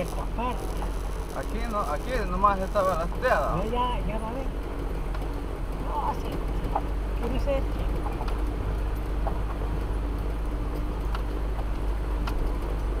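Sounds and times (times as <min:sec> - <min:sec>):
engine and tyres rumbling: 0:00.0 - 0:13.0.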